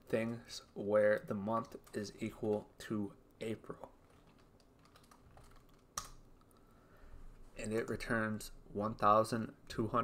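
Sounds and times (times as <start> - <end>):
faint typing on keyboard: 0.0 - 6.8.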